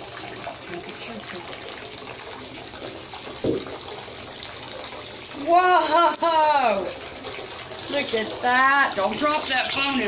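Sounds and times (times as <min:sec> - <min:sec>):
water in a bathtub: 0:00.0 - 0:10.0
dull thump: 0:03.4 - 0:03.7.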